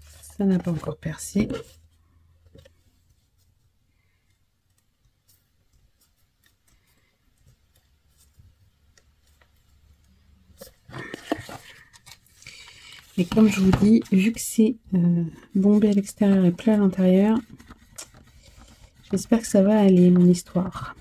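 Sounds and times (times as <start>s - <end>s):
cardboard box handling: 0.0s - 1.8s, 10.6s - 12.2s.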